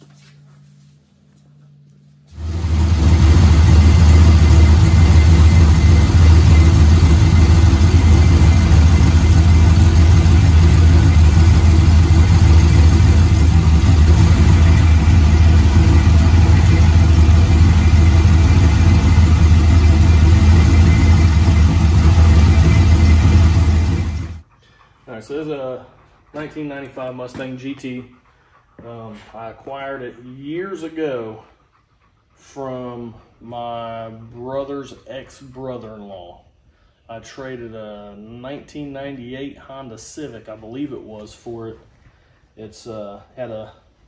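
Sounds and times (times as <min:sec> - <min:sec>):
car engine idling: 0:02.4 - 0:24.5.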